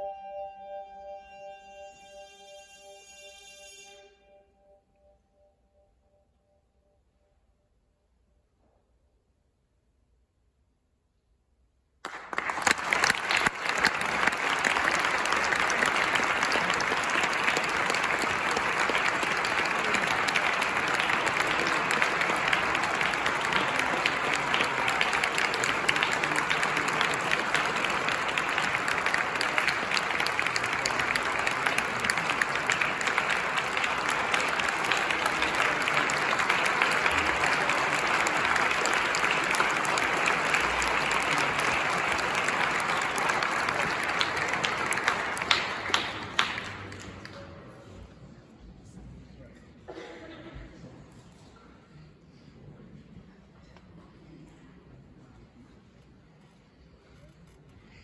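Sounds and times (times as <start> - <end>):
audience applauding: 12.0 - 47.7.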